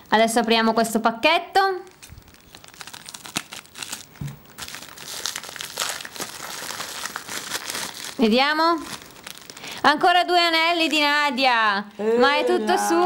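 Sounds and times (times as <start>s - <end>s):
plastic envelope crinkling: 1.8s - 9.8s, 10.6s - 11.3s.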